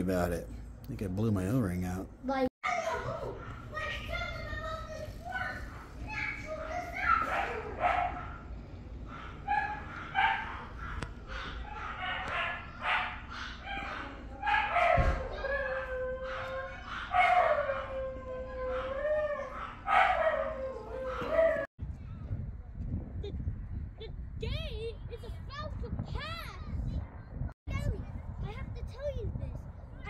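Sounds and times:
dog howling and yelping: 5.3s - 8.4s, 9.1s - 21.7s.

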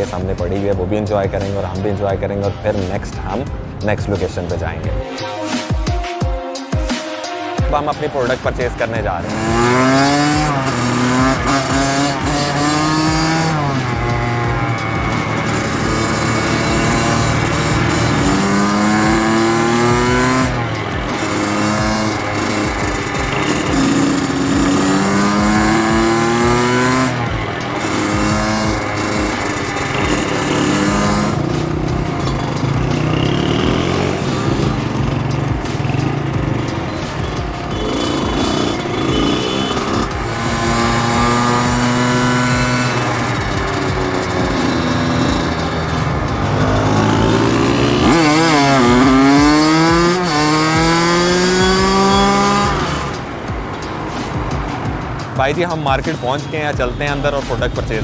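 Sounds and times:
dirt bike engine revving: 8.3s - 55.4s.

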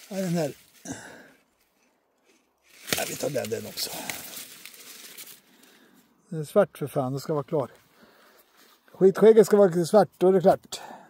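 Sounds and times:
dry corn husks rustling: 0.0s - 6.4s.

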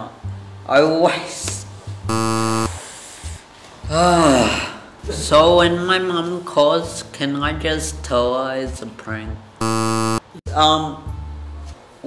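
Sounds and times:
harsh electronic buzz: 2.1s - 2.8s, 9.6s - 10.2s.

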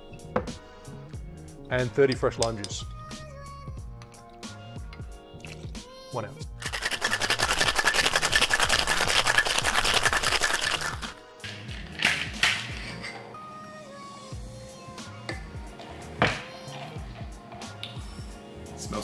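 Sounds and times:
background music: 0.0s - 19.0s
ice rattling in metal shaker: 6.6s - 11.2s.

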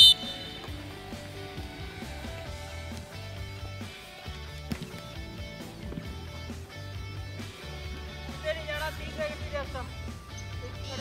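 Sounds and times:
coach's whistle blast: 0.0s - 0.7s
background music with guitar: 0.0s - 11.0s.

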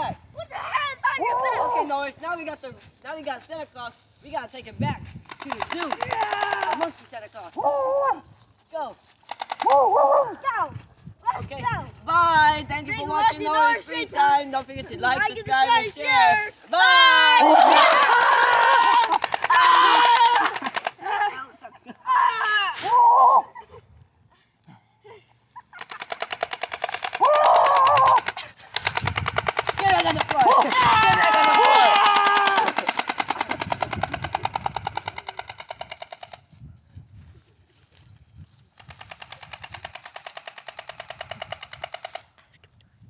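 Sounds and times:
toy gun electronic rattle: 5.3s - 6.9s, 25.8s - 36.5s, 38.8s - 42.3s
children shouting: 16.8s - 21.3s, 27.2s - 28.3s, 30.4s - 32.9s.

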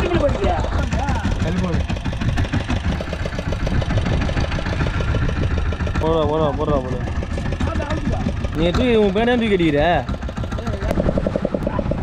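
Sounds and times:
voices: 0.0s - 2.0s, 5.9s - 12.0s
boat engine running: 0.0s - 12.0s.

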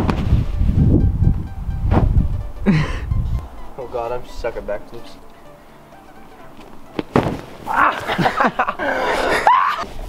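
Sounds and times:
heavy low rumble: 0.0s - 4.8s
person landing on bean bag: 6.6s - 8.2s.

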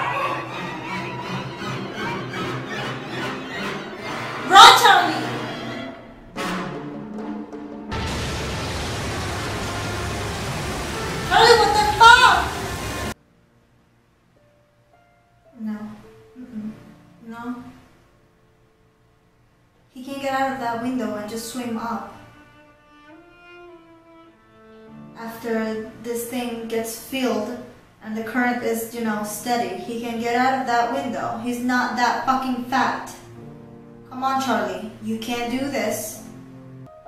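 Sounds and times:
orchestral string music: 0.0s - 8.2s, 21.9s - 25.4s
seawater rushing into a room: 6.6s - 13.2s
underwater blast: 7.8s - 13.2s.

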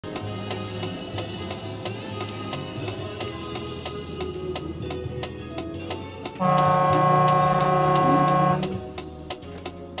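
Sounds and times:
background music: 0.0s - 10.0s
vehicle horn blast: 6.4s - 8.8s.

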